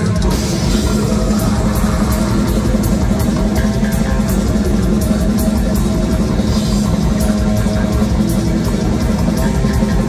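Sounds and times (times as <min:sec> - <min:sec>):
bass guitar: 0:00.0 - 0:10.0
distorted electric guitars: 0:00.0 - 0:10.0
drums: 0:00.0 - 0:10.0.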